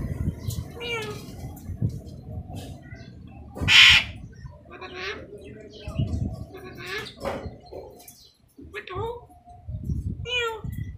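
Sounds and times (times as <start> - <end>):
parrot squawking: 3.6 - 5.3.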